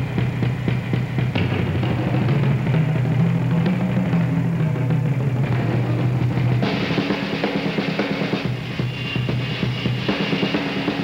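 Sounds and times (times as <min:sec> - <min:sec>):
drum kit played solo: 0:00.0 - 0:11.0.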